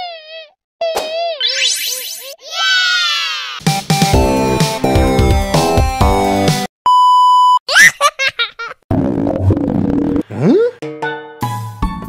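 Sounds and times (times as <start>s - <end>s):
bouncy music: 3.6s - 6.7s
censor beep: 6.9s - 7.6s
high-pitched cartoonish laughs: 7.7s - 8.8s.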